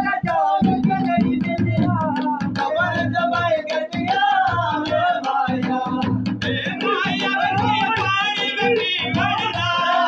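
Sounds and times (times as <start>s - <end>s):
man singing folk song: 0.0s - 10.0s.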